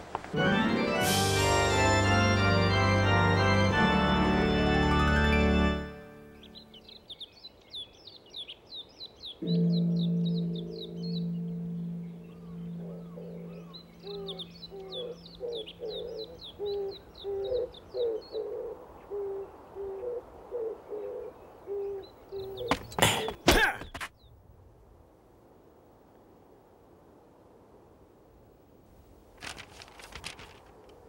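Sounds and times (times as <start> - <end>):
birds chirping: 2.0 - 24.4
low sustained tone: 9.4 - 15.3
lower bird call: 9.4 - 23.4.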